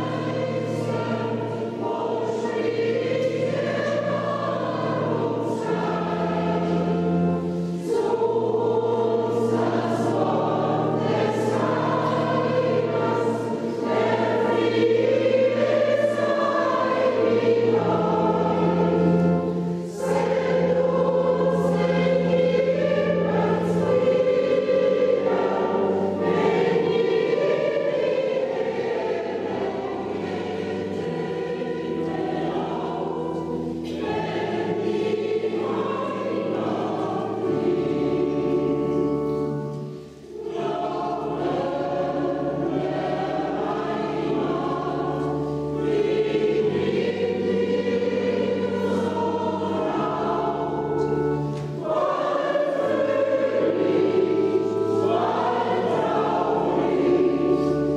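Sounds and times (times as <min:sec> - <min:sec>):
church choir singing: 0:00.0 - 0:57.9
low organ notes: 0:00.0 - 0:57.9.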